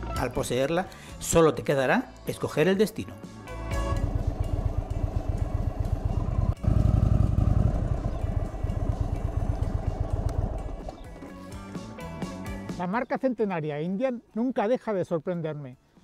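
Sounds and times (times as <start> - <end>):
background music: 0.0 - 16.0
v-twin engine pulsing: 3.6 - 11.3.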